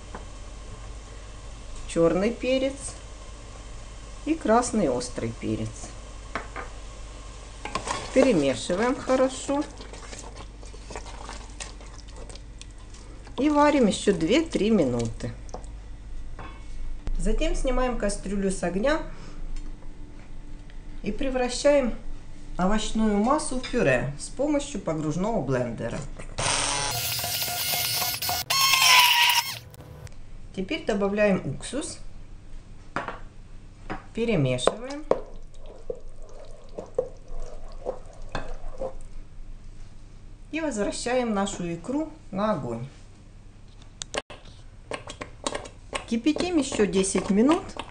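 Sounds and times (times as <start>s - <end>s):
wooden spoon scraping and knocking pot: 7.6s - 8.6s, 35.6s - 39.0s
wooden spoon stirring thick stew: 7.7s - 13.6s, 35.2s - 39.1s, 44.3s - 47.9s.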